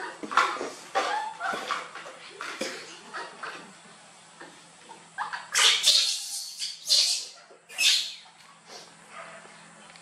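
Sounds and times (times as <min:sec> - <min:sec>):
baby monkey crying: 0:05.5 - 0:08.3.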